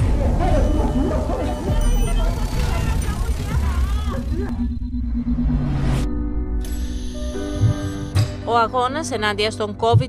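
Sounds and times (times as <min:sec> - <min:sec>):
voices: 0:00.0 - 0:04.7
deep rumble: 0:00.0 - 0:06.7.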